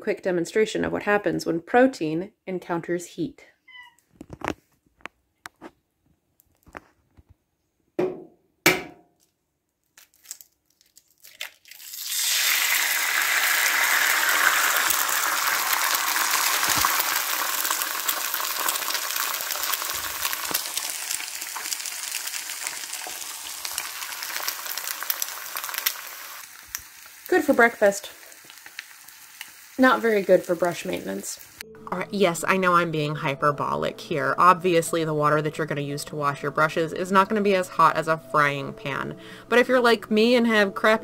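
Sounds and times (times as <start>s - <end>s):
egg sizzling in a pan: 11.3s - 31.6s.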